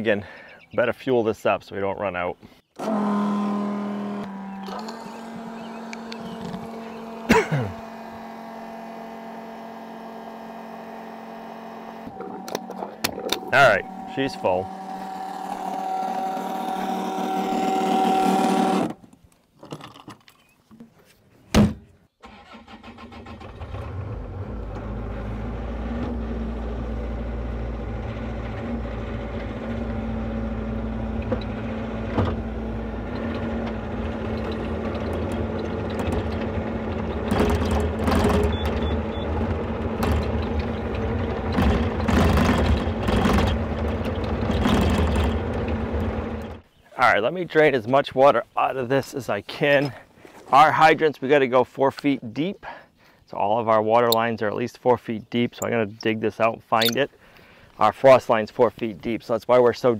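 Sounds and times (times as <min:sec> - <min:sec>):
diesel engine running: 0:02.8 - 0:18.8, 0:22.4 - 0:46.7
fuel pump whine: 0:02.8 - 0:19.0, 0:22.3 - 0:46.7
clanks and knocks: 0:33.1 - 0:46.6.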